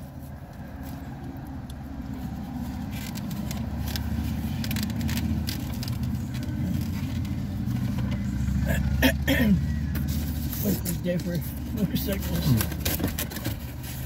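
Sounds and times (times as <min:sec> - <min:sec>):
engine rumbling: 0:00.0 - 0:14.0.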